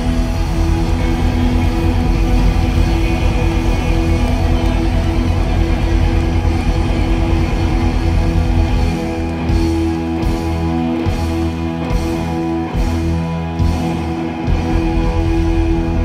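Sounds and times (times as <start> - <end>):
electric guitar sustained notes: 0.0 - 16.0
rock band playing: 0.0 - 16.0.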